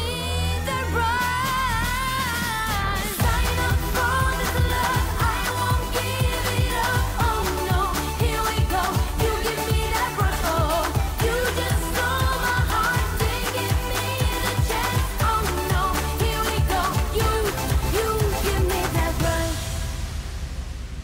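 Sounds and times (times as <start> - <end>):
pop backing track: 0.0 - 19.8
woman singing pop: 0.0 - 20.0
steady kick-drum beat: 2.2 - 20.1.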